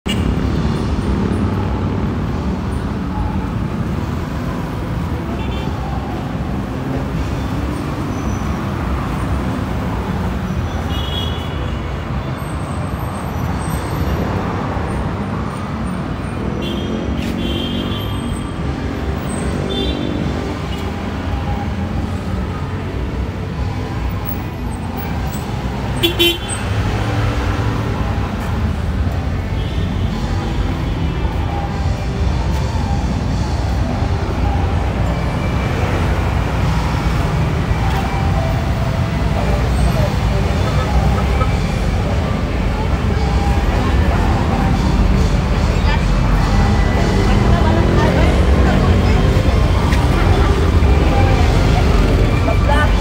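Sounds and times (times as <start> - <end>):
passing cars and motorbikes: 0.1 - 53.0
voices of passersby: 0.1 - 53.0.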